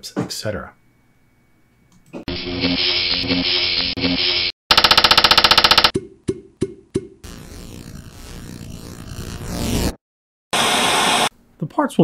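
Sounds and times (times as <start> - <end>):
rapid buzzing stutter: 4.7 - 5.9, 7.2 - 10.0.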